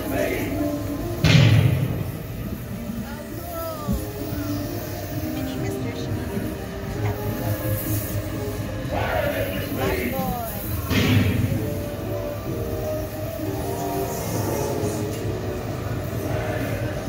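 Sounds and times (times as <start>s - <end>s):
low rumble of ride vehicle: 0.0s - 17.0s
ride soundtrack music: 0.0s - 17.0s
loud rush of noise: 6.3s - 17.0s.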